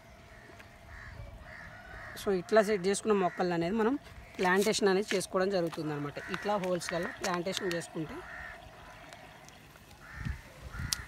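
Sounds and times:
bird calling: 0.0 - 11.0.

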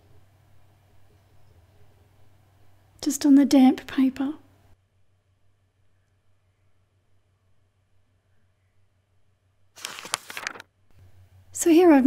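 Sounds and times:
faint low hum: 0.0 - 12.0
page flipping: 9.8 - 10.7.

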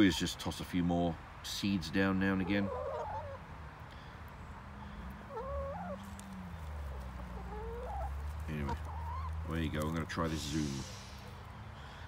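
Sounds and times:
hens calling softly: 2.0 - 11.2.

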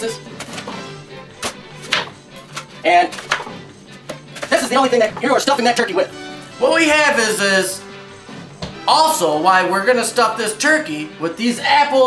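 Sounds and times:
background music: 0.0 - 12.0
knife cutting apple: 0.3 - 5.2.

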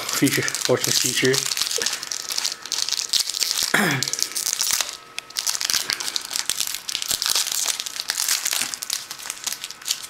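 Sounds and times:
wrappers crinkling: 0.0 - 10.0.

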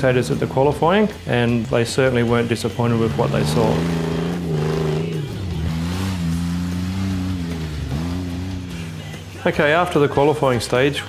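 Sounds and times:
buggy engine revving: 0.0 - 11.0.

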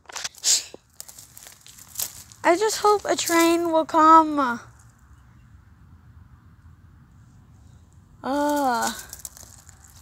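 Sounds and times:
footsteps crunching on gravel: 0.0 - 4.0, 8.3 - 10.0.

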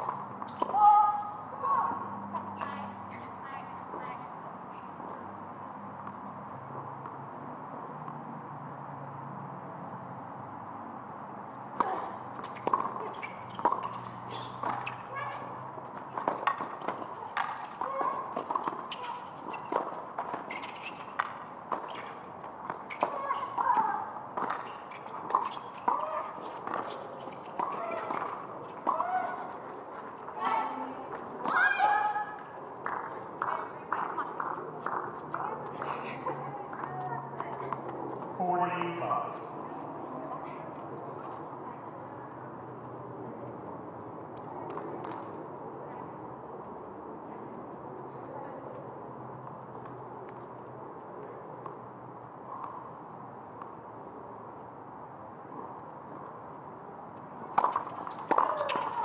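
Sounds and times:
voices: 0.0 - 4.4, 11.6 - 43.6, 57.4 - 59.0
racket hitting tennis ball: 11.8 - 30.3, 57.4 - 59.0.

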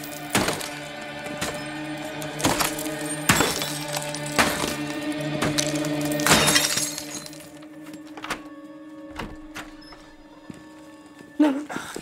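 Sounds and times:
glass pane shattering: 0.0 - 7.6
droning music score: 0.0 - 12.0.

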